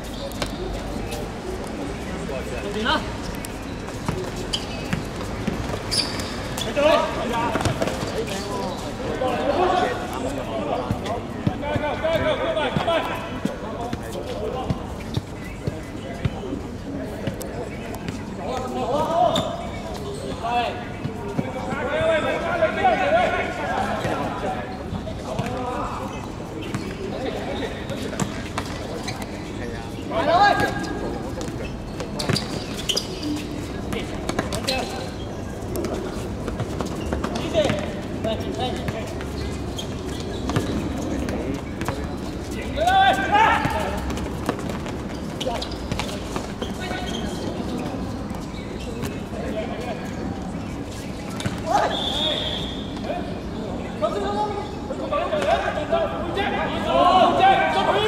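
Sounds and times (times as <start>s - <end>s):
players calling and shouting: 0.0s - 58.0s.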